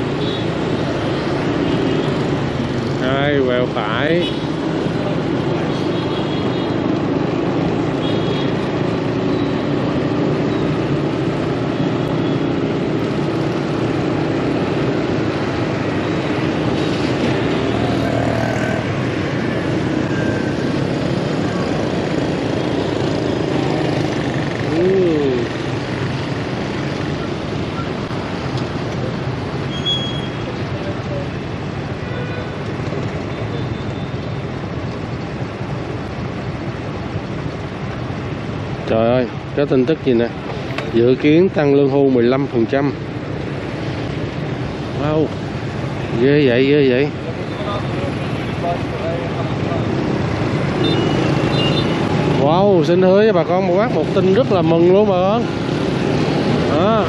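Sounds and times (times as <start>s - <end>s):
motorbike engine and road noise: 0.0s - 57.0s
scooters and cars passing: 0.0s - 57.0s.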